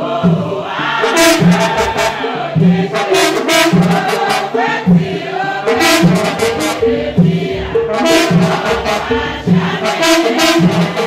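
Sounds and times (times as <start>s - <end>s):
choir singing: 0.0s - 11.0s
sharp percussive strokes: 0.8s - 11.0s.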